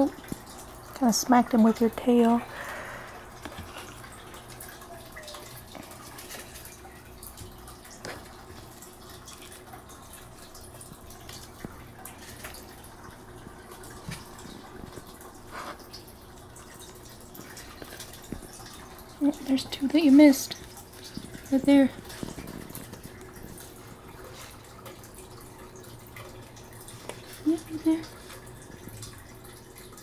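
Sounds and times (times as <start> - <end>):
faint clicks and taps: 16.8 - 25.1.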